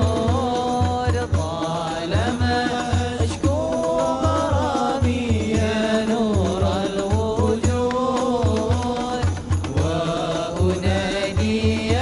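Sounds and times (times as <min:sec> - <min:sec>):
men singing together: 0:00.0 - 0:12.0.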